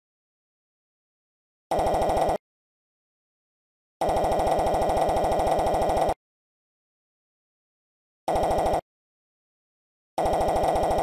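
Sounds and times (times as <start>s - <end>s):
rapid text-scroll beeps: 1.7s - 2.4s, 4.0s - 6.2s, 8.3s - 8.8s, 10.2s - 11.0s.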